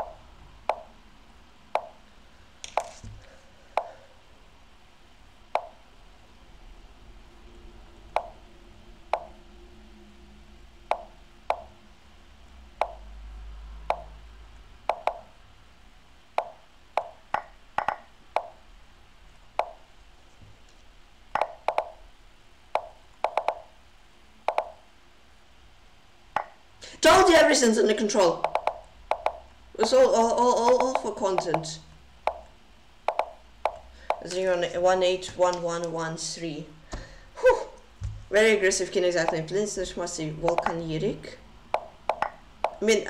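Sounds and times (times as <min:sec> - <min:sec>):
chess move plopping clicks: 0:00.0 - 0:01.0, 0:01.8 - 0:02.0, 0:05.6 - 0:05.8, 0:08.1 - 0:08.4, 0:10.9 - 0:11.8, 0:12.8 - 0:13.1, 0:13.9 - 0:14.2, 0:14.9 - 0:15.3, 0:16.4 - 0:18.6, 0:19.6 - 0:19.8, 0:21.4 - 0:22.0, 0:22.8 - 0:23.7, 0:24.5 - 0:24.8, 0:28.4 - 0:30.0, 0:30.6 - 0:31.7, 0:32.3 - 0:34.4, 0:39.2 - 0:39.5, 0:40.4 - 0:40.8, 0:41.7 - 0:42.8.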